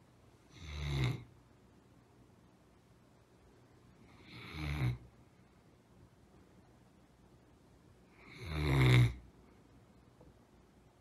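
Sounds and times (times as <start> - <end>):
dog snoring: 0.5 - 1.3, 4.1 - 5.1, 8.1 - 9.2.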